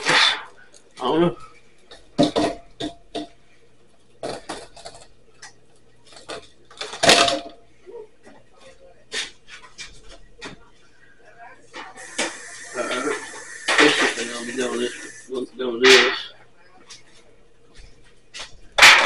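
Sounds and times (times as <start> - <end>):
voices: 10.2 - 17.3
steady hiss: 11.8 - 16.0.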